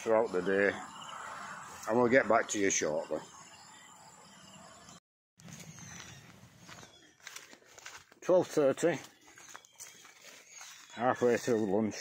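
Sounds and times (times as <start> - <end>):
faint rural outdoor noise: 0.0 - 12.0.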